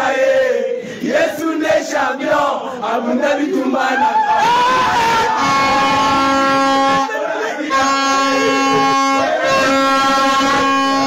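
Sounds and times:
horn blast: 0:04.7 - 0:11.0.

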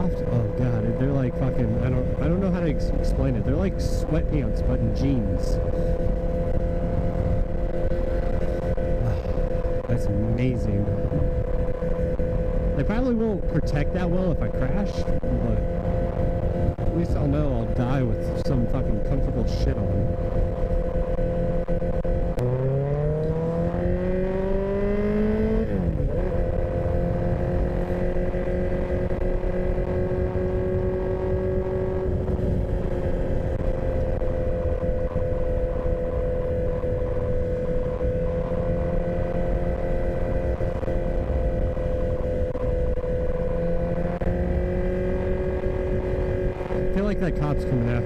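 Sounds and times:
motorcycle engine accelerating: 0:00.0 - 0:48.0.

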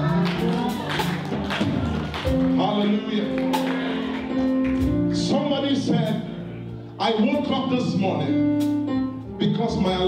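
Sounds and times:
band playing worship music: 0:00.0 - 0:10.0.

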